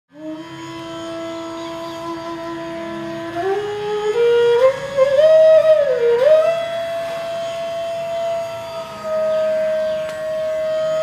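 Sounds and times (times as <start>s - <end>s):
flute holding long note: 0.1s - 11.0s.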